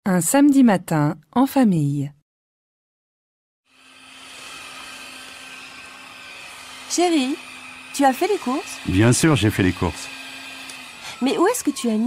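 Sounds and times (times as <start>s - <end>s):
electric motor hum with hiss: 3.7s - 12.0s.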